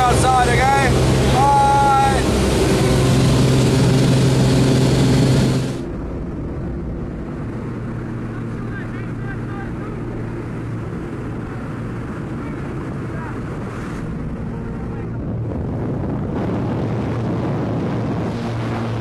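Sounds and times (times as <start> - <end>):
plane engine and propeller drone: 0.0 - 19.0
wind noise: 9.9 - 19.0.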